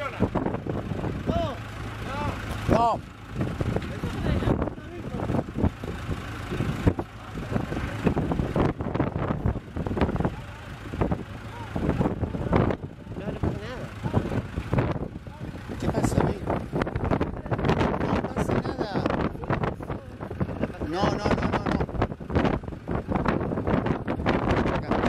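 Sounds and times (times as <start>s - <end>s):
tractor engine under load: 0.0s - 25.0s.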